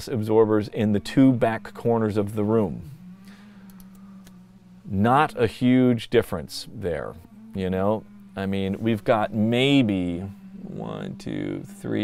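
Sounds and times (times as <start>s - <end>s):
low steady hum: 0.0s - 12.0s
faint clicks: 3.6s - 4.4s.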